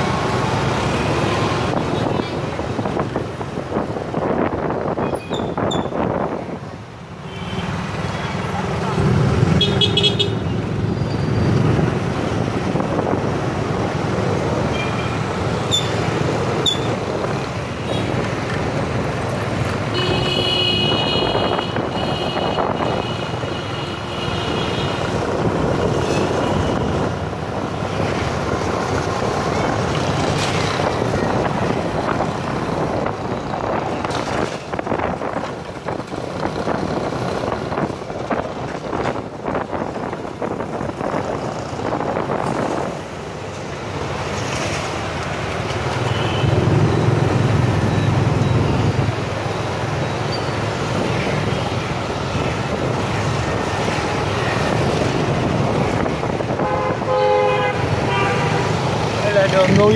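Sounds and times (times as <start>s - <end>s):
motorbike engine and road noise: 0.0s - 59.9s.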